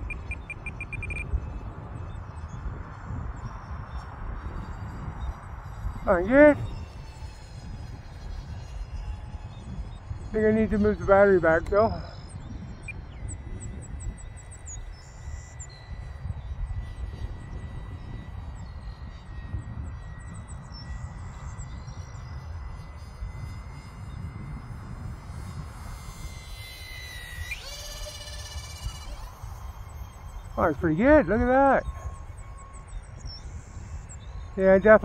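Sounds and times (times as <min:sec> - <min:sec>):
model jet fan whine: 0:00.0 - 0:35.0
wind buffeting microphone: 0:00.0 - 0:35.0.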